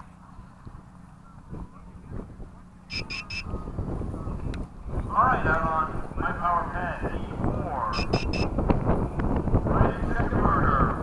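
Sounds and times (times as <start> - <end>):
low wind rumble: 0.0 - 11.0
high-pitched electronic beeps: 2.9 - 3.5, 8.0 - 8.5.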